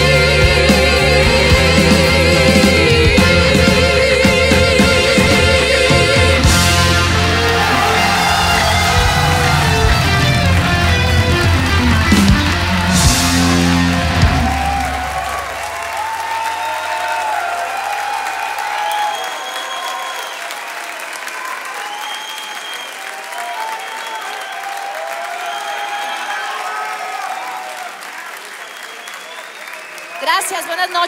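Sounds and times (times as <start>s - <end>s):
band's low note: 0.0s - 15.9s
audience applauding and cheering: 0.0s - 31.0s
people shouting: 6.8s - 19.2s.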